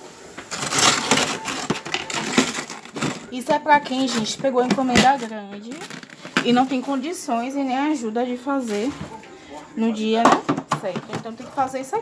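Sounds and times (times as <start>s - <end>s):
plastic tubs crackling and rustling: 0.0s - 12.0s.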